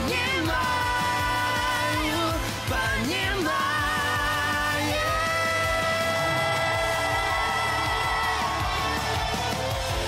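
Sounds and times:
rock band drums: 0.0s - 10.0s.

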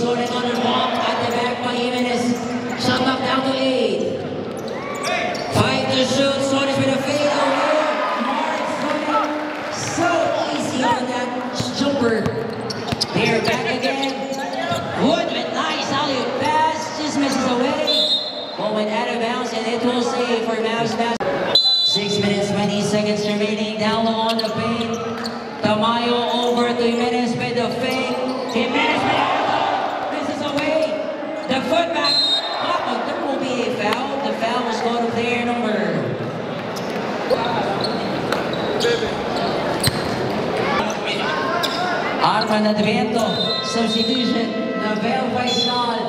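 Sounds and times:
crowd chattering: 0.0s - 46.0s.

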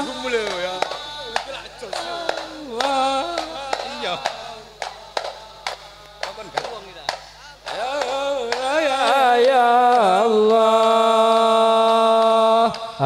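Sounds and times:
man singing devotional chant: 0.0s - 13.0s.

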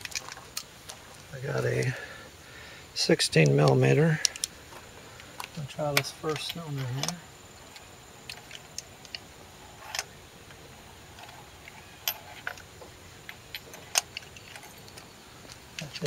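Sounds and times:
light metal clicks and clinks: 5.2s - 10.6s, 11.2s - 16.0s.

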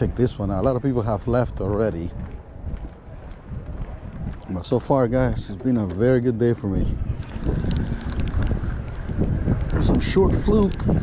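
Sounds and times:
wind buffeting microphone: 0.0s - 11.0s
man speaking: 4.4s - 7.0s.

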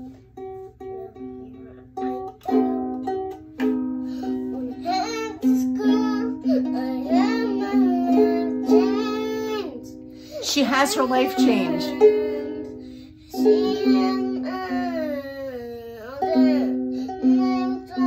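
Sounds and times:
ukulele strumming: 0.0s - 15.2s
child singing long notes: 4.2s - 10.0s, 11.3s - 18.0s.

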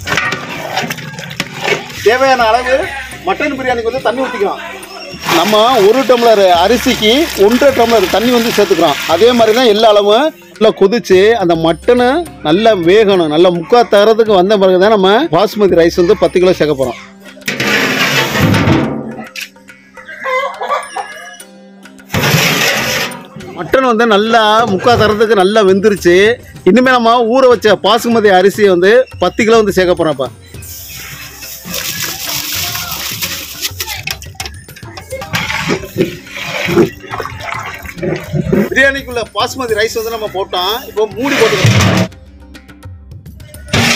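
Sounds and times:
background music: 0.0s - 43.9s
rice pouring into boiling water: 5.2s - 9.7s.

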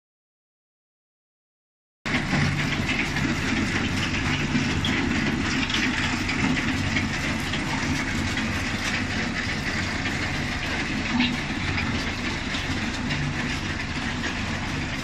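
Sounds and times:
conveyors rattling and clattering: 2.1s - 15.0s
engine hum: 2.1s - 15.0s.

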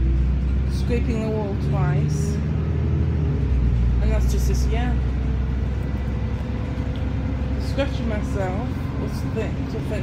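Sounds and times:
bus rumble inside cabin: 0.0s - 10.0s.

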